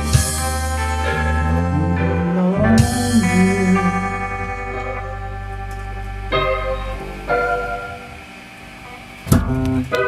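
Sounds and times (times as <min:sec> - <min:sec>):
electric guitar chord strummed: 0:00.0 - 0:10.0
keyboard chord: 0:00.0 - 0:10.0.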